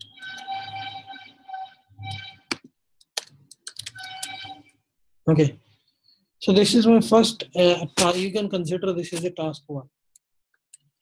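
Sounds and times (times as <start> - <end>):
thin high tone: 0.0 - 2.5.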